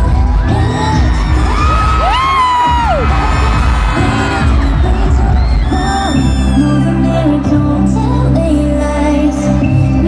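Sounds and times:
audience cheering and screaming: 0.0s - 8.0s
pop music with heavy bass beat: 0.0s - 10.0s.

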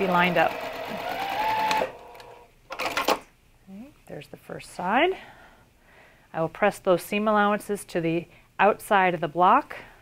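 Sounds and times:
sewing machine motor whine: 0.0s - 2.4s.

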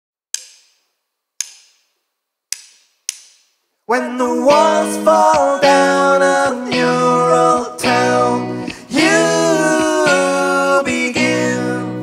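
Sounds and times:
drumsticks clicking together: 0.3s - 1.9s, 2.5s - 3.6s
man singing: 3.9s - 12.0s.

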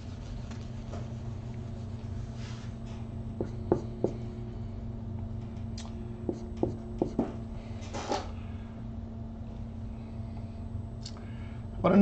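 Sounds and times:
steady low hum: 0.0s - 12.0s
marker writing on a board: 6.3s - 7.4s.

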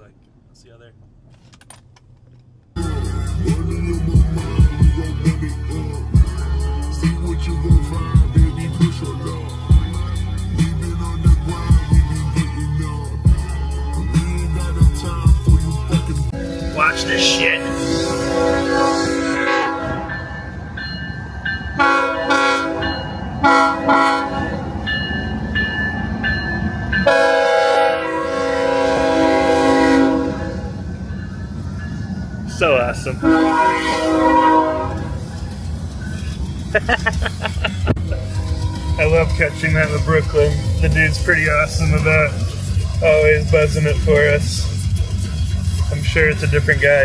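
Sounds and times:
low rumble of passing train: 2.2s - 47.0s
train horn blasts: 16.3s - 20.4s, 21.8s - 24.7s, 27.0s - 30.9s, 33.1s - 35.3s.

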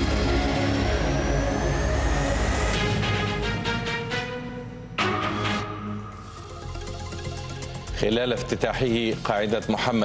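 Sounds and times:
pulsing bass: 0.0s - 3.0s
rising electronic tone: 0.0s - 3.4s
news theme music: 0.0s - 10.0s.

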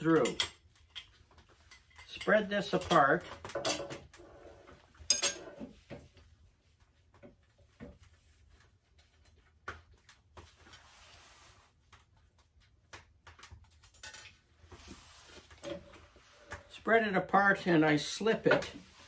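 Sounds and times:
soft rubbing: 14.7s - 16.7s.

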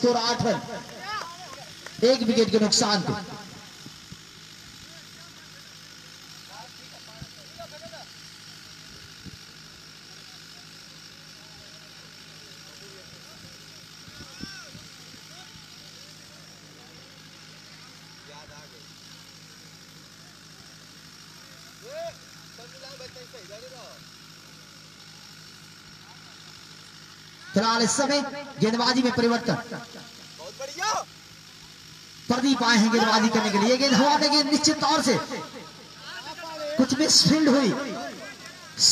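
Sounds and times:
steady background hum: 0.0s - 38.9s.

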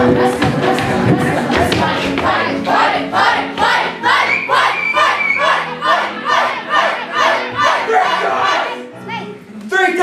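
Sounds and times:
young voices chanting rhythmically: 0.2s - 9.3s.

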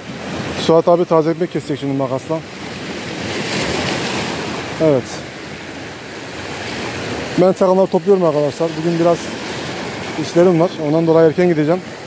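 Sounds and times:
surf on pebbly shore: 0.0s - 12.0s.

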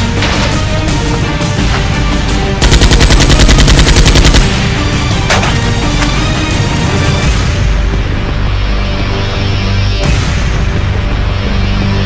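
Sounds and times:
background music: 0.0s - 12.0s
automatic gunfire: 2.6s - 4.9s.

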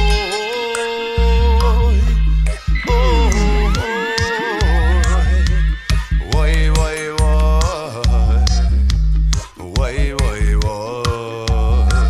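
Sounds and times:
deep bass line: 0.0s - 0.4s, 1.2s - 3.9s, 4.6s - 12.0s
wordless vocal note: 0.0s - 8.9s.

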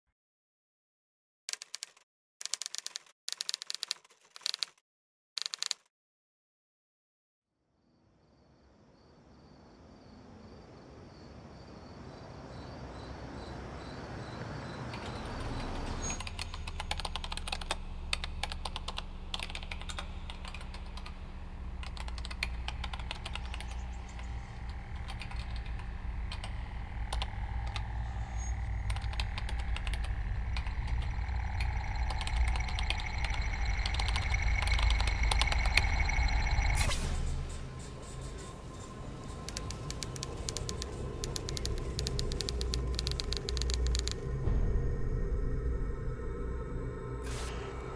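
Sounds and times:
computer keyboard clicking: 1.5s - 4.8s, 5.4s - 5.9s, 14.9s - 21.2s, 21.8s - 24.2s, 24.9s - 27.8s, 28.8s - 31.1s, 39.4s - 44.2s
low dramatic music drone: 9.7s - 47.9s.

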